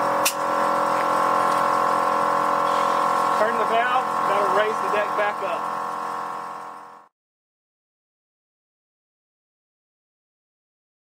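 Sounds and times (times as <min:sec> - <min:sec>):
steady mechanical hum: 0:00.0 - 0:07.1
air valve click: 0:00.2 - 0:01.6.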